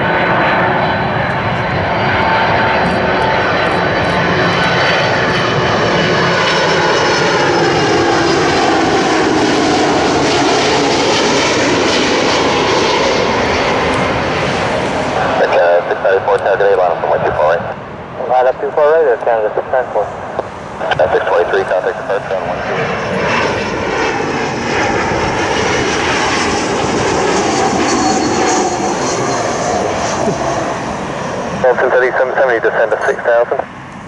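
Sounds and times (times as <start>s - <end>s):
jet engines rushing and whining: 0.0s - 34.0s.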